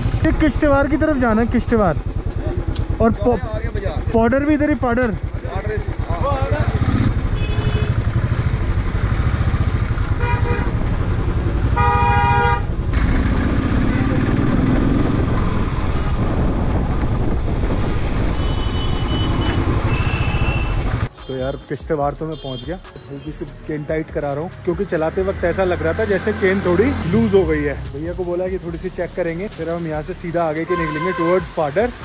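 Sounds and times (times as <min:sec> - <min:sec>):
motorcycle engine running: 0:00.0 - 0:21.2
vehicle horns honking: 0:07.2 - 0:08.2, 0:10.0 - 0:10.9, 0:11.6 - 0:12.8, 0:18.2 - 0:22.9, 0:30.6 - 0:31.6.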